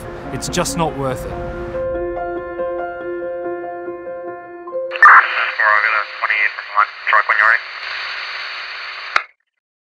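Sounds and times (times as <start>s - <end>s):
radio static: 4.9s - 9.3s
voice over two-way radio: 5.0s - 9.2s.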